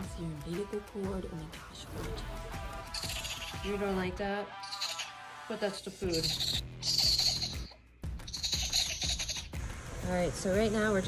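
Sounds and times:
soft background music: 0:00.0 - 0:11.0
baby raccoon crying: 0:02.9 - 0:03.8, 0:04.6 - 0:05.3, 0:06.0 - 0:09.6.

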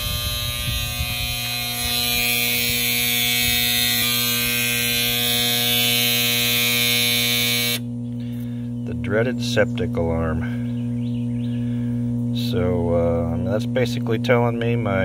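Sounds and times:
septic system alarm buzzing: 0:00.0 - 0:08.6.

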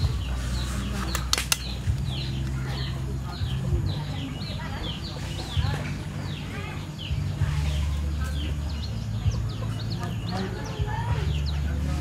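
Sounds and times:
birds chirping: 0:00.0 - 0:12.0
sharp clicks: 0:01.0 - 0:02.6.

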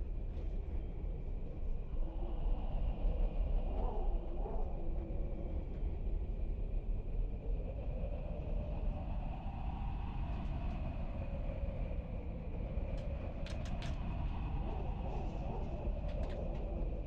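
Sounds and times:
low rumbling background noise: 0:00.0 - 0:17.0.

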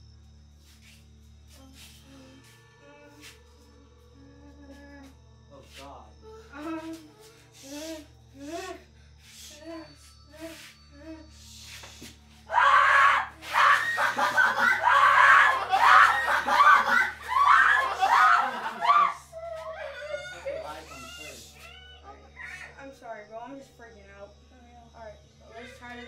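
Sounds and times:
person screaming: 0:12.5 - 0:19.2
muffled whimpering cries: 0:13.6 - 0:22.7.

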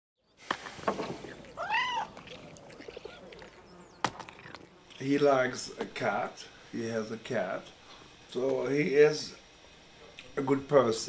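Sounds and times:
cat meowing: 0:01.6 - 0:02.3.

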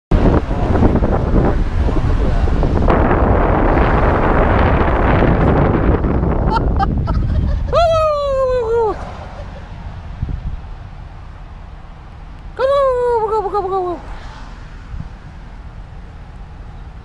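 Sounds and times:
car road noise: 0:00.1 - 0:17.0
wind buffeting microphone: 0:00.1 - 0:17.0.

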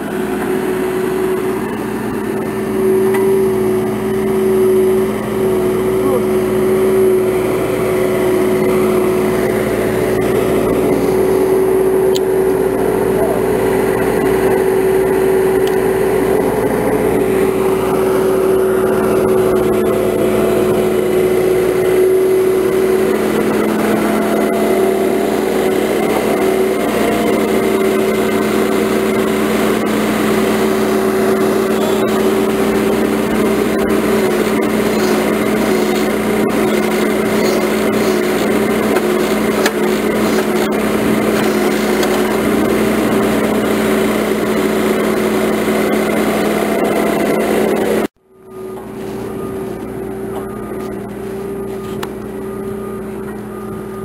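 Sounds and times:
loader engine droning: 0:00.0 - 0:54.0.

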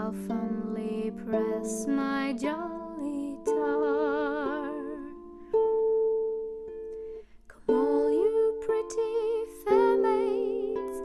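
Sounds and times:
soprano voice singing wordless notes: 0:00.0 - 0:05.6, 0:07.0 - 0:11.0
plucked harp notes: 0:00.0 - 0:11.0.

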